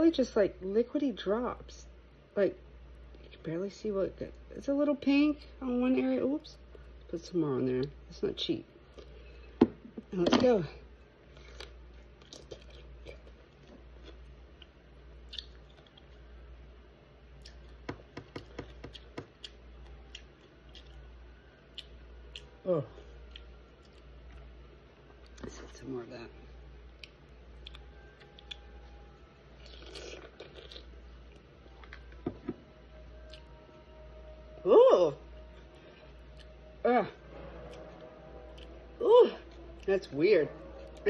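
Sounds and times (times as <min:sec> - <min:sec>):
crunching and chewing pickle: 0:11.3 - 0:16.4, 0:17.3 - 0:25.8, 0:26.8 - 0:32.2, 0:33.2 - 0:33.6, 0:35.6 - 0:36.6
soft mouth clicks: 0:15.3 - 0:15.6.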